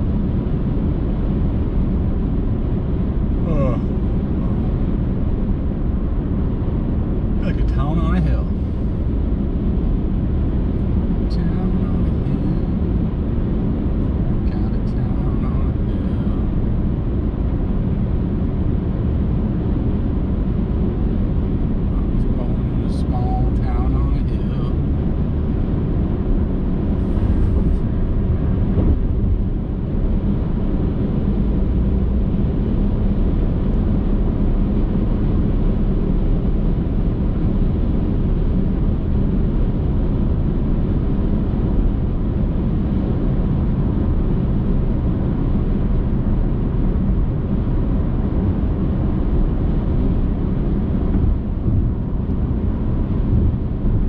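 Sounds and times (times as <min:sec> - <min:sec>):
car driving at highway speed: 0:00.0 - 0:54.0.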